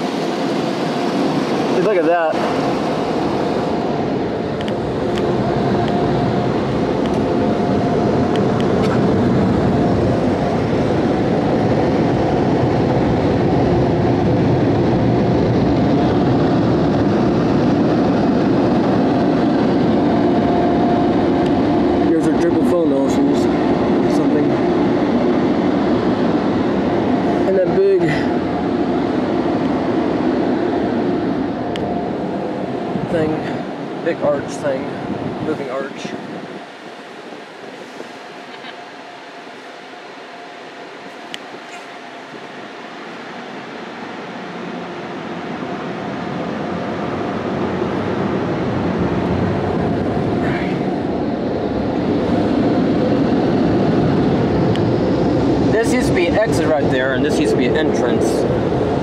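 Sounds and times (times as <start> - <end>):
car wash dryer blowing air: 0.0 - 59.0.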